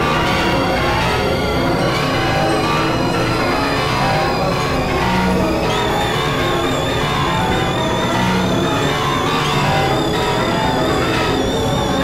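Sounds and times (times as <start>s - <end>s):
electronic synthesizer drones: 0.0s - 12.0s.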